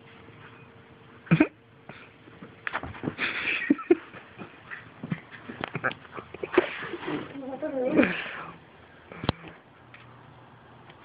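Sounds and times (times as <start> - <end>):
dog wavering vocal sound: 7.0 - 8.4.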